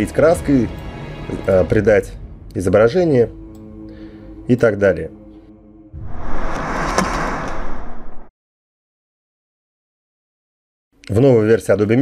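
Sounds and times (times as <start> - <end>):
loud noisy whoosh: 6.0 - 8.3.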